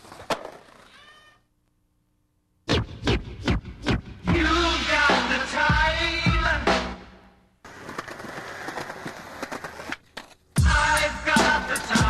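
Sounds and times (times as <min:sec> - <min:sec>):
skateboard wheels on rough concrete: 0:00.0 - 0:01.0, 0:07.6 - 0:10.6
music: 0:02.7 - 0:07.4, 0:10.6 - 0:12.0.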